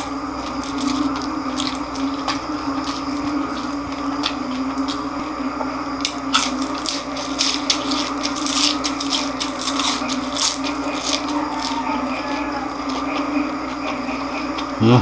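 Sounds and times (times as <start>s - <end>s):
crunchy chewing: 0.0s - 15.0s
steady low hum: 0.0s - 15.0s
person saying uh: 14.8s - 15.0s.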